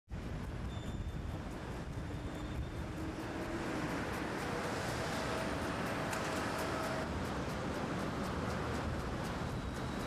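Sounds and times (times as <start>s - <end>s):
low rumble of traffic: 0.1s - 10.0s.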